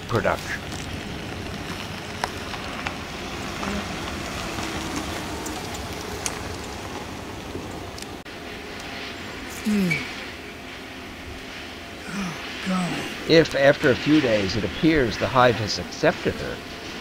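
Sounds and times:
steady noisy hiss: 0:00.0 - 0:17.0.

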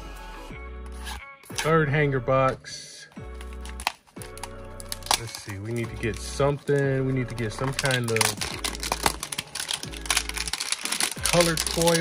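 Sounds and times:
background music with held tones: 0:00.0 - 0:12.0
cardboard box cracking: 0:07.6 - 0:12.0.

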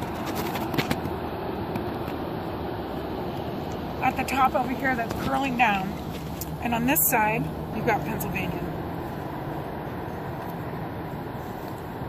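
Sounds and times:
road vehicle driving by: 0:00.0 - 0:12.0.

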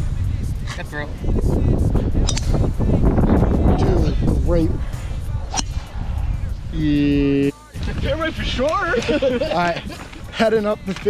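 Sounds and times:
golf club striking ball: 0:02.2 - 0:02.7, 0:05.5 - 0:06.0.

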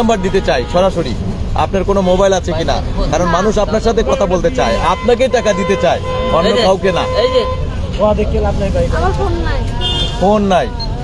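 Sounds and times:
people talking: 0:00.0 - 0:10.9.

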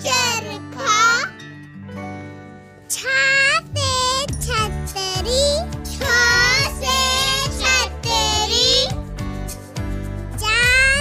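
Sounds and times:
children's music backing: 0:00.0 - 0:11.0
child singing: 0:03.0 - 0:09.0, 0:10.4 - 0:11.0.

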